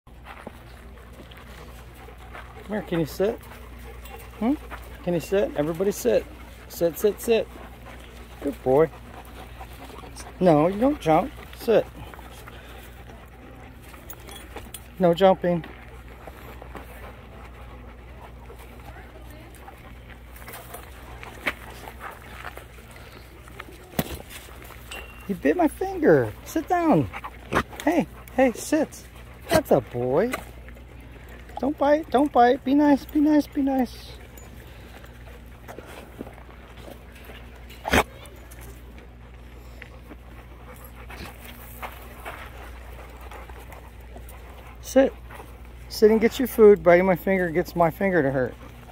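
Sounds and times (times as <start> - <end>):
dogs panting: 0.1 - 48.9.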